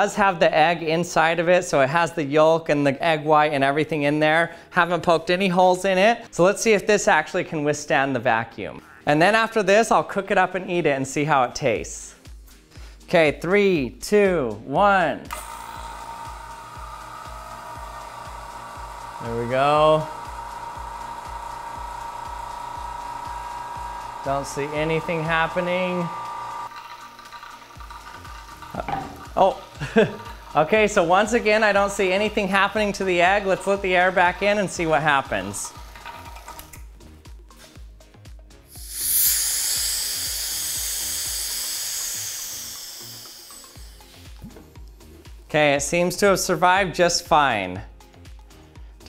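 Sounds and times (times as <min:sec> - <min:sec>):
background music with steady beat: 0:00.0 - 0:49.0
vacuum pump humming: 0:15.3 - 0:36.8, 0:38.7 - 0:45.0.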